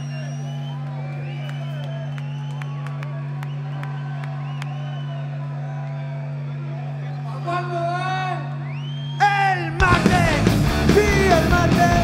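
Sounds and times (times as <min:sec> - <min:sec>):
whistles: 0:00.0 - 0:05.3, 0:08.5 - 0:09.4
crowd cheering: 0:00.0 - 0:12.0
low hum from stage: 0:00.0 - 0:12.0.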